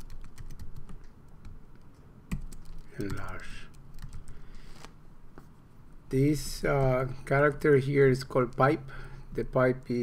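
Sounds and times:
computer keyboard typing: 0.0 - 4.4.

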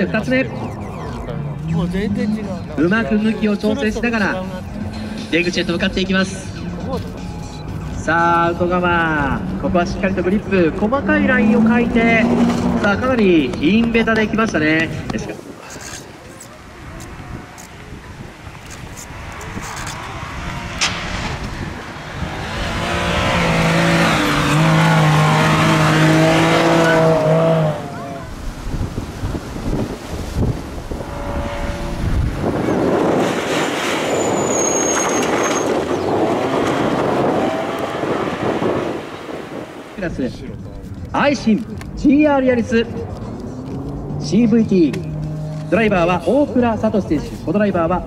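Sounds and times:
rally car engine revving: 0.1 - 15.1, 16.8 - 40.2, 41.8 - 46.9.

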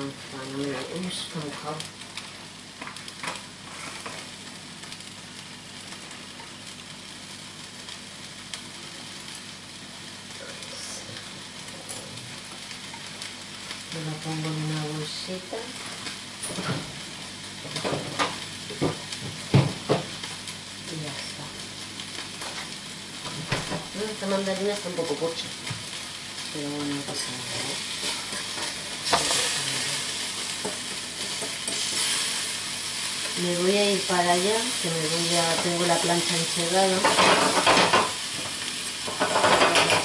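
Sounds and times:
meat sizzling in a pan: 0.0 - 40.0.

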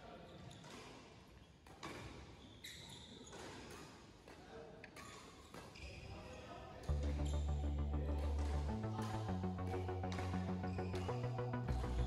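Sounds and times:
loud music: 6.9 - 12.0.

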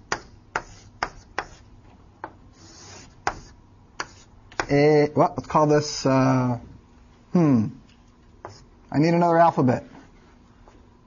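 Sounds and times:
scratchy writing stroke: 0.2 - 1.7, 2.5 - 4.3, 8.4 - 8.7.

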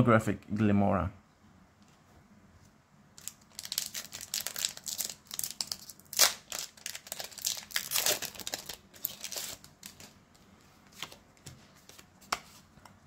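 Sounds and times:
foil wrapper crinkling: 3.2 - 10.1.

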